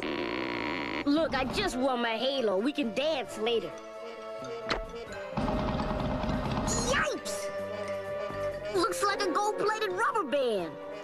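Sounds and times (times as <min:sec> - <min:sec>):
cartoon rattling rumble: 0:05.4 - 0:07.1.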